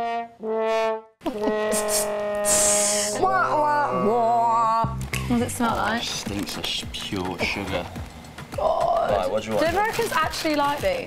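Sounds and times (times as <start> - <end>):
sad trombone sound effect: 0.0 - 3.8.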